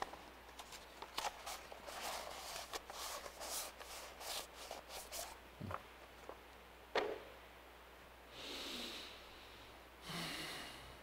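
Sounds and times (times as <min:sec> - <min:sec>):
soft breath: 0:08.3 - 0:11.0.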